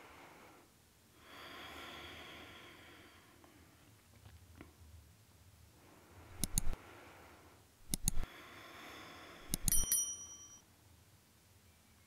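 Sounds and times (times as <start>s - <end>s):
mouse clicks: 6.4s - 6.8s, 7.9s - 8.3s, 9.5s - 9.8s
high notification bell ding: 9.7s - 10.6s.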